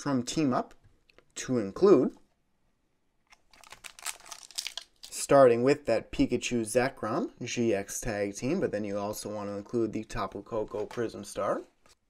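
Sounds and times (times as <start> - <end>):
foil wrapper crinkling and tearing: 3.3 - 5.2.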